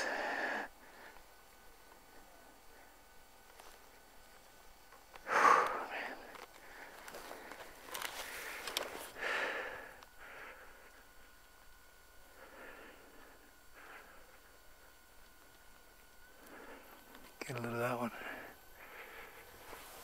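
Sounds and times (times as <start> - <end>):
person breathing: 0.0 - 1.4, 5.2 - 11.2, 12.2 - 15.0, 16.3 - 17.2, 18.1 - 20.0
camera handling clicks and rustle: 6.3 - 9.0.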